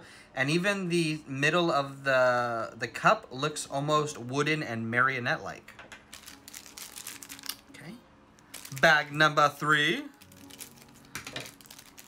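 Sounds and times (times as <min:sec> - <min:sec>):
foil wrapper crinkling: 0:06.1 - 0:07.6, 0:08.4 - 0:09.4, 0:10.0 - 0:12.0.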